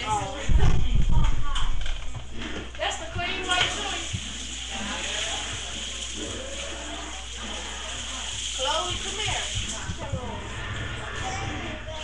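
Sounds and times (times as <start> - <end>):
faint muffled voices: 0.0 - 12.0.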